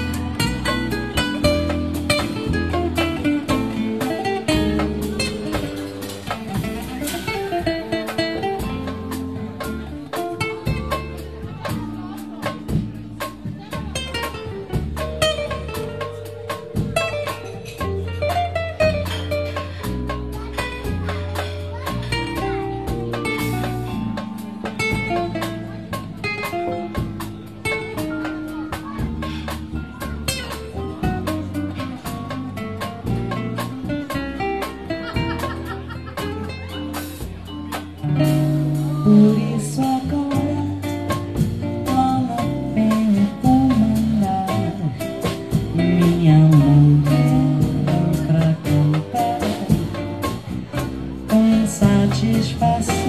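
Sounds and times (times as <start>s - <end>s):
bass line: 0.0s - 53.0s
drum and percussion strokes: 0.0s - 53.0s
jazz band playing: 0.0s - 53.0s
plucked guitar: 0.0s - 53.0s.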